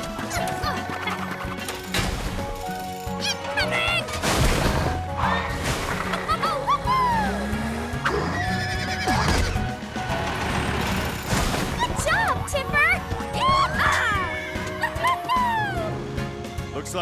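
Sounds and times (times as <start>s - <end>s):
background music: 0.0s - 17.0s.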